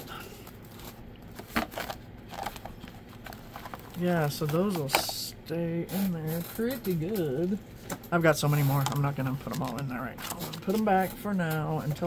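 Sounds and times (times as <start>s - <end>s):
paper notepads rustling: 0.0s - 5.2s, 5.8s - 12.0s.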